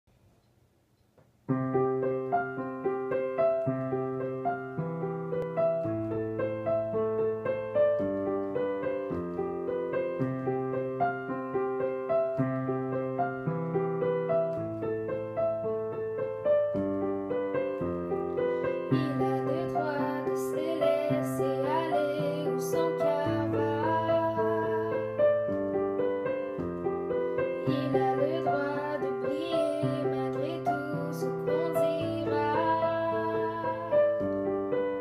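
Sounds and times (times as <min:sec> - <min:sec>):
digital piano slow chords: 0:01.5 - 0:35.0.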